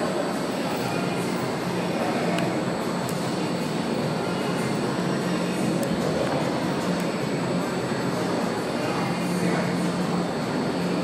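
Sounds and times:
continuous low hum: 0.0s - 11.0s
room noise: 0.0s - 11.0s.

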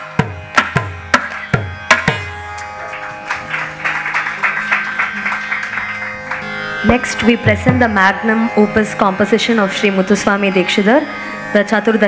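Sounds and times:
steady drone: 2.2s - 12.0s
audience applause: 2.8s - 6.7s.

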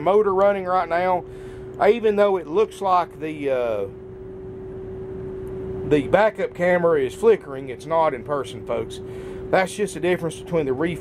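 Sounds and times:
diesel engine idling: 5.9s - 11.0s.

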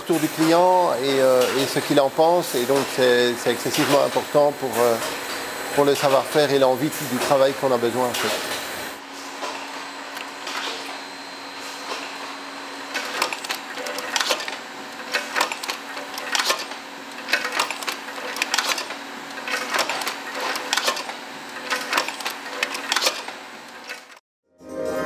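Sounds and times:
machine humming: 0.0s - 24.2s
sharp mechanical clacks: 0.1s - 8.6s, 12.9s - 24.2s.

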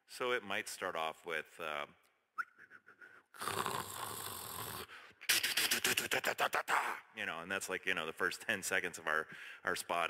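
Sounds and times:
whistled note: 2.4s - 3.0s
sharp mouth clicks: 2.4s - 7.0s
man beatboxing: 2.6s - 7.2s.

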